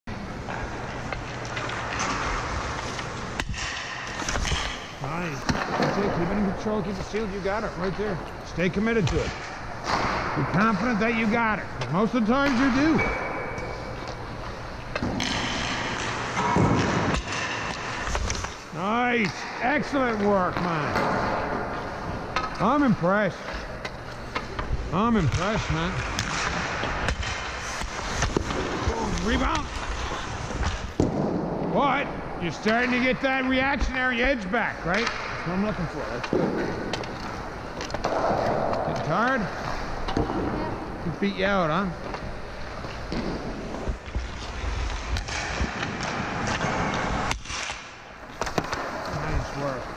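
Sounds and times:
skates and pads scraping ice: 0:00.3 - 0:13.0, 0:14.0 - 0:31.6, 0:32.4 - 0:49.9
pucks and sticks cracking: 0:00.4 - 0:49.9
stick hitting puck: 0:15.0 - 0:18.6
skates hissing on ice: 0:27.5 - 0:30.6.

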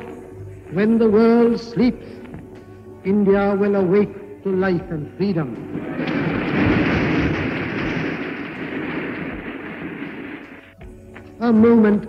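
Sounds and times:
crowd applauding: 0:05.6 - 0:10.6.

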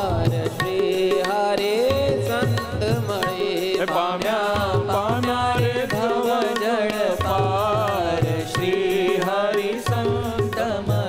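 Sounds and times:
man singing devotional song: 0:00.0 - 0:11.0
tabla and percussion: 0:00.0 - 0:11.0.

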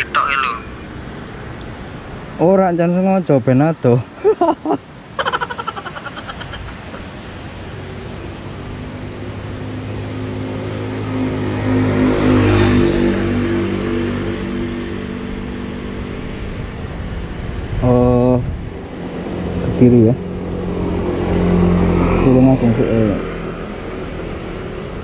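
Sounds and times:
vehicle passing by: 0:05.2 - 0:17.8, 0:18.9 - 0:25.0.

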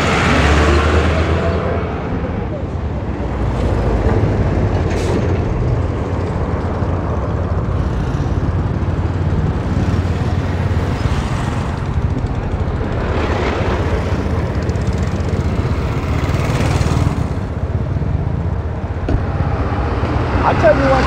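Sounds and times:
wind rushing on microphone: 0:01.1 - 0:21.0
vehicle engine running: 0:05.8 - 0:19.6.

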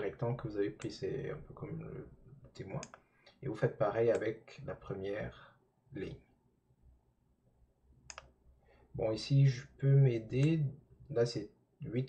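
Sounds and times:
computer mouse click: 0:08.1 - 0:08.3.

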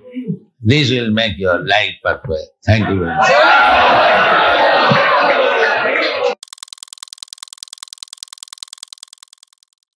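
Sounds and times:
rapid electronic glitch clicks: 0:06.4 - 0:09.9.

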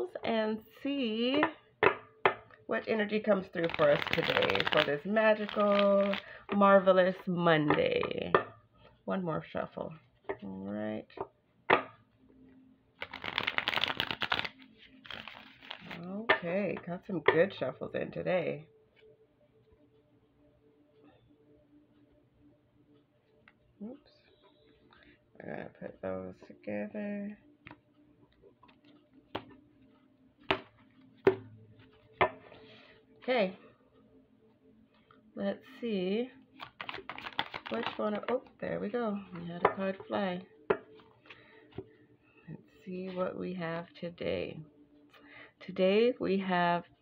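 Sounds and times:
cards riffle-shuffling: 0:03.5 - 0:06.3, 0:13.0 - 0:16.1, 0:36.6 - 0:38.3
cards tapping on a tabletop: 0:29.4 - 0:29.6, 0:30.4 - 0:31.5.

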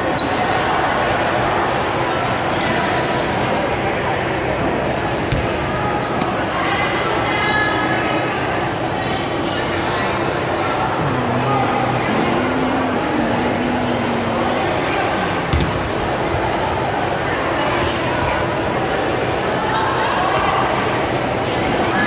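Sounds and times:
hubbub of voices: 0:00.0 - 0:22.0.

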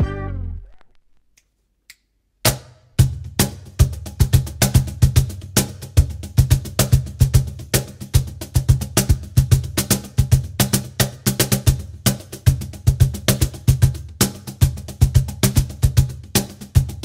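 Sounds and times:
cajon bass tones and slaps: 0:02.5 - 0:17.0.

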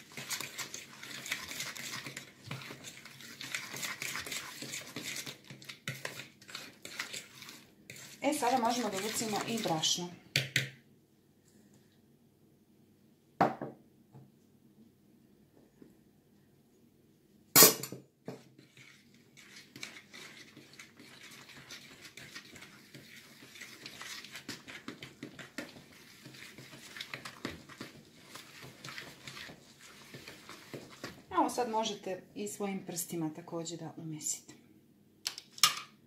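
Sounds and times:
hand mixing batter in a bowl: 0:00.0 - 0:10.8, 0:18.2 - 0:34.3
knocks on a mixing bowl: 0:13.4 - 0:13.8.

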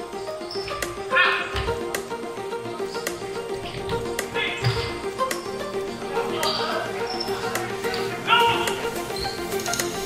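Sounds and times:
music with sharp beat: 0:00.0 - 0:10.0.

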